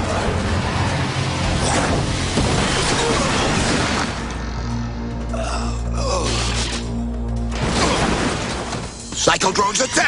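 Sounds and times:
low music drone: 0.0 - 9.2.

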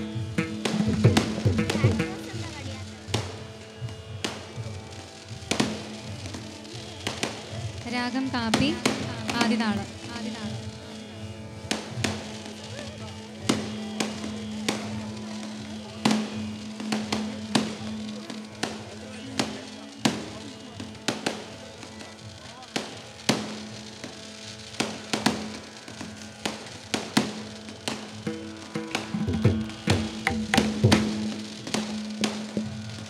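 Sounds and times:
fireworks bangs: 0.0 - 3.4, 5.2 - 10.7, 13.5 - 21.6, 22.4 - 33.0
background music: 0.0 - 11.8, 23.2 - 33.0.

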